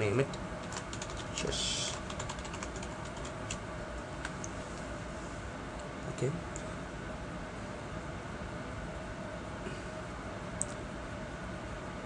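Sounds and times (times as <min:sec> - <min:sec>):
computer keyboard key clicks: 0:02.0 - 0:03.6.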